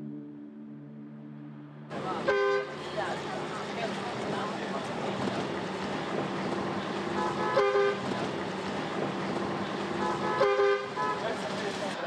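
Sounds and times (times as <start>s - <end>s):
bus engine and road noise: 1.4s - 12.0s
vehicle horn honking: 2.2s - 2.8s, 7.2s - 8.0s, 10.0s - 11.3s.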